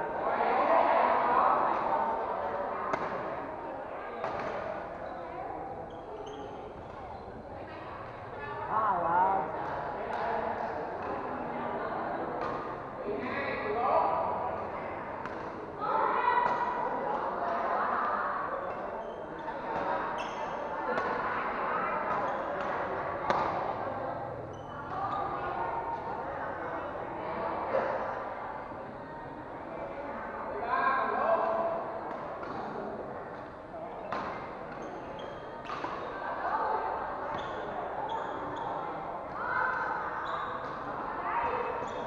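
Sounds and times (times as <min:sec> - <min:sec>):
murmur of spectator chatter: 0:00.0 - 0:42.0
racket hitting shuttlecock: 0:02.9 - 0:03.3, 0:22.1 - 0:23.7, 0:34.1 - 0:35.0
shoes squeaking on floor: 0:05.8 - 0:07.4, 0:18.8 - 0:20.7, 0:24.5 - 0:25.4, 0:34.0 - 0:36.1, 0:37.3 - 0:38.9, 0:40.0 - 0:42.0
racket striking shuttlecock: 0:22.6 - 0:23.6.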